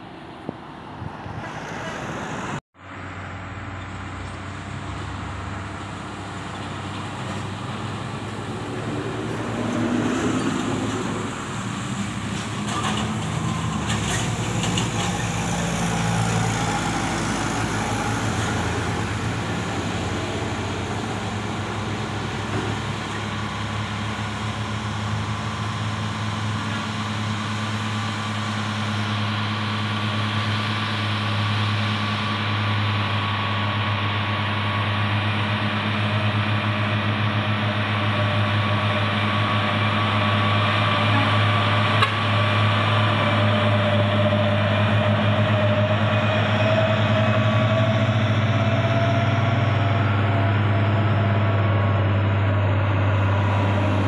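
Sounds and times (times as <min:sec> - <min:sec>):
truck diesel engine drone: 0:00.0 - 0:54.0.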